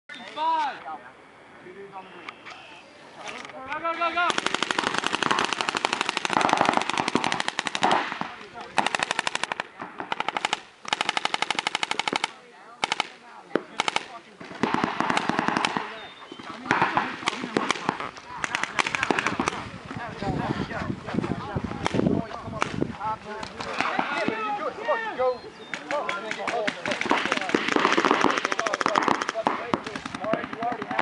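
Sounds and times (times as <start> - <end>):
paintball markers firing rapidly: 4.2 - 16.0, 16.6 - 19.6, 25.8 - 31.0.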